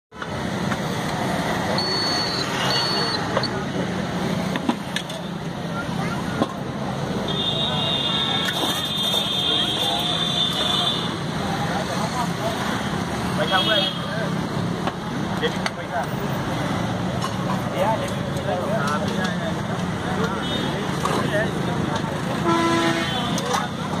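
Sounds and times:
traffic: 0.1s - 24.0s
vehicles running: 0.1s - 24.0s
voices in the background: 1.0s - 24.0s
high steady beeps: 1.8s - 3.2s
vehicle horn: 7.3s - 11.1s, 22.4s - 23.4s.

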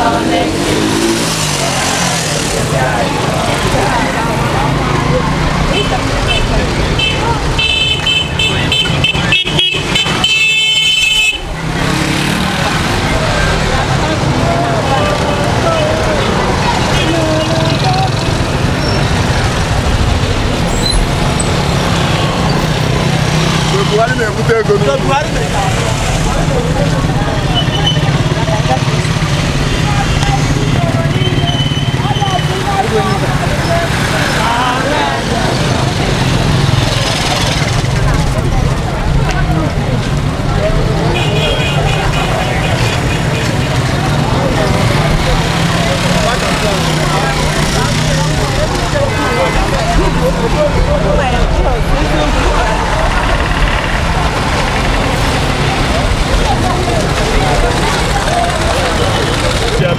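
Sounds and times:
crowd voices: 0.0s - 59.9s
vehicle and motorcycle engines: 0.0s - 59.9s
car horn tooting: 5.8s - 11.6s.

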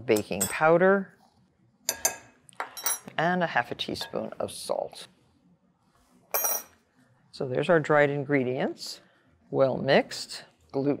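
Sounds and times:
metal spoon clinking in ceramic dish: 0.2s - 0.7s, 1.9s - 3.1s.

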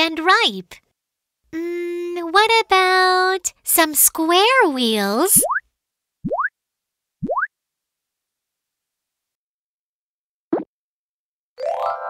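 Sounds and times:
cartoon rising plop: 5.4s - 5.6s, 6.2s - 6.5s, 7.2s - 7.5s.

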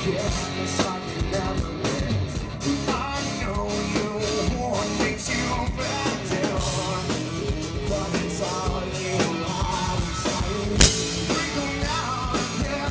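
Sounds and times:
drum kit: 0.0s - 12.9s
man singing lead vocal: 0.0s - 12.9s
distorted electric guitar: 7.2s - 12.9s.

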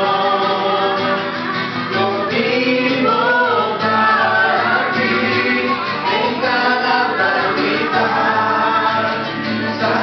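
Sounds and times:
acoustic guitar: 0.0s - 10.0s
woman and voices singing: 0.0s - 10.0s.

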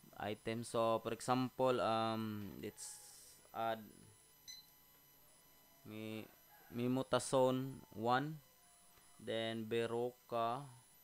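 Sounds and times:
barcode scanner beep: 0.3s - 5.7s.

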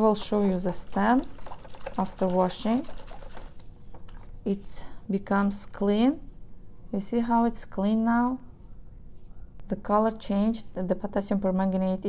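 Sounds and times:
water sloshing in plastic basin: 0.0s - 4.4s.

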